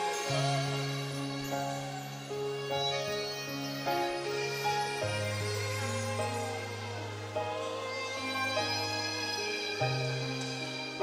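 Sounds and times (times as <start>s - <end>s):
worship band music: 0.0s - 11.0s.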